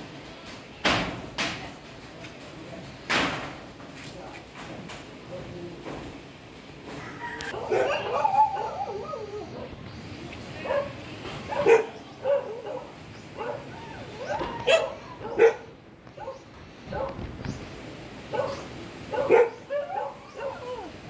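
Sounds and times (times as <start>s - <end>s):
dog barking: 7.6s - 9.7s, 10.6s - 17.2s, 18.3s - 20.9s.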